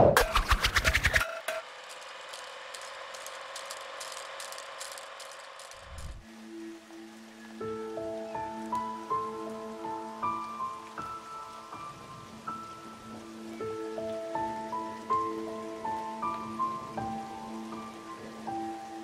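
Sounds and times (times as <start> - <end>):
film reel clicking rattle: 0.8 - 6.2
soft music with sustained notes: 1.6 - 19.0.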